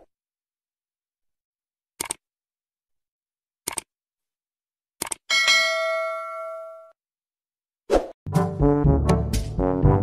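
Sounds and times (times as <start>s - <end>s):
bell-like chime ringing: 5.3s - 7.0s
music with brass: 8.3s - 10.0s.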